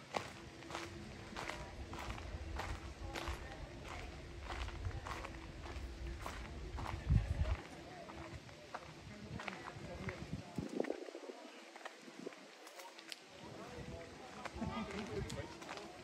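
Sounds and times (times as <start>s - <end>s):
footsteps on woodland path: 0.0s - 16.0s
low rumble: 0.4s - 7.8s.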